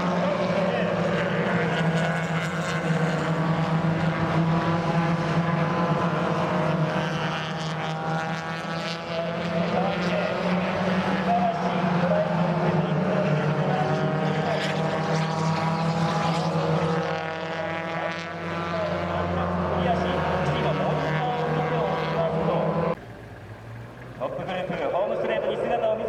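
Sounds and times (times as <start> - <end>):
race car engines passing: 0.0 - 26.0.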